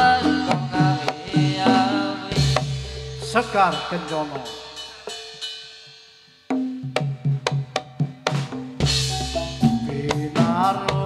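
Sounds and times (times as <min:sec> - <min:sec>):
drum strokes: 0:00.0 - 0:11.0
gamelan music: 0:01.6 - 0:05.8, 0:08.8 - 0:11.0.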